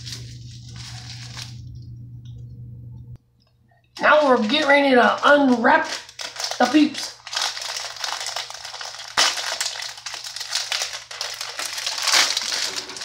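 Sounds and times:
plastic wrapper tearing and crinkling: 0:00.0 - 0:01.8, 0:04.0 - 0:13.0.

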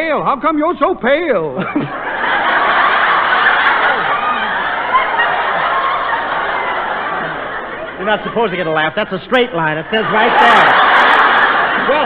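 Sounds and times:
studio audience laughing: 0:01.5 - 0:12.0.

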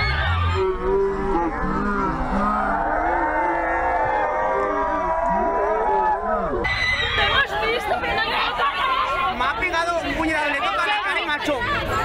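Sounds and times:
crowd booing: 0:00.0 - 0:09.6.

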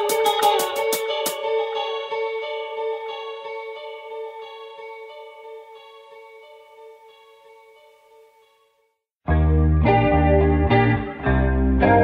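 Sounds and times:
guitar chord ringing with picked notes: 0:00.0 - 0:08.4, 0:09.3 - 0:12.0.

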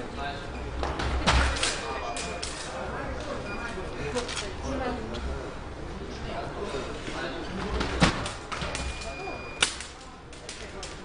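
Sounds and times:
high electronic beep: 0:08.8 - 0:09.7.

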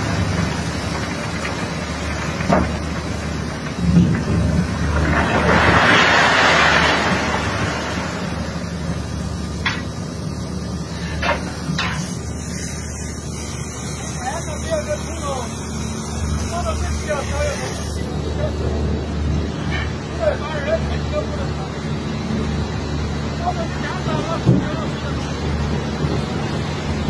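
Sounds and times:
heavy diesel machinery drone: 0:00.0 - 0:27.0.

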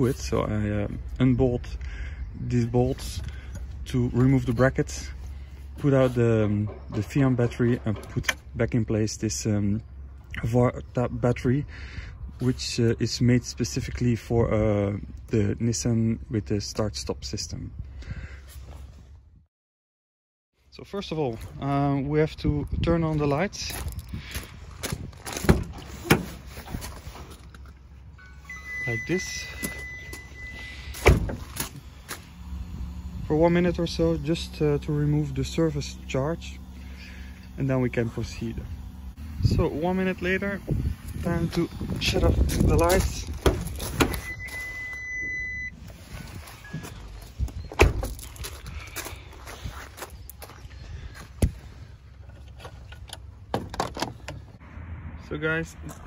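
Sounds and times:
footsteps crunching on gravel: 0:23.1 - 0:25.5, 0:41.0 - 0:44.8, 0:45.8 - 0:51.8
knocks and sharp thunk: 0:25.4 - 0:26.4, 0:31.0 - 0:31.5
steady electronic beep: 0:28.2 - 0:30.9, 0:44.2 - 0:45.8.

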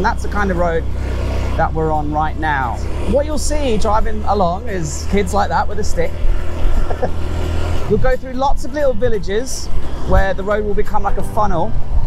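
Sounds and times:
motorbike engine running: 0:00.0 - 0:12.0
wind rumbling on microphone: 0:05.1 - 0:12.0
person laughing: 0:06.8 - 0:07.3.

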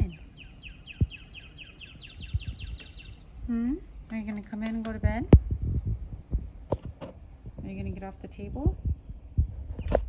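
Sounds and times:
small bird chirping: 0:00.0 - 0:03.9, 0:08.8 - 0:10.0.

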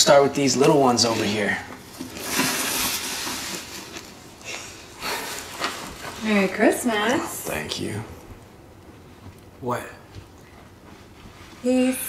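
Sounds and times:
wrapping paper rustling: 0:01.0 - 0:06.9.

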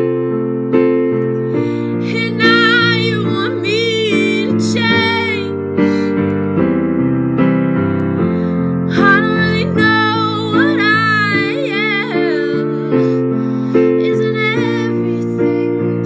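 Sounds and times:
keyboard accompaniment: 0:00.0 - 0:16.0
girl singing pop ballad: 0:01.5 - 0:06.2, 0:08.9 - 0:16.0.

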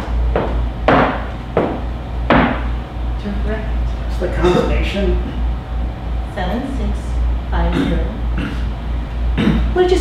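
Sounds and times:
low room hum: 0:00.0 - 0:10.0.

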